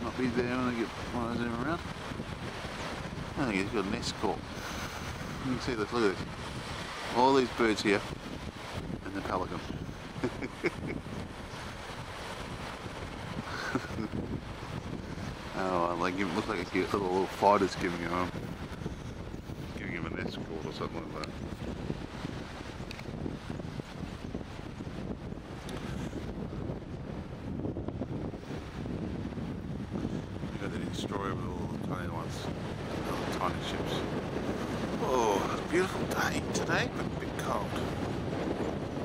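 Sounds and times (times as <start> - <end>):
small waves breaking on shore: 0.0 - 39.0
wind noise on microphone: 0.0 - 39.0.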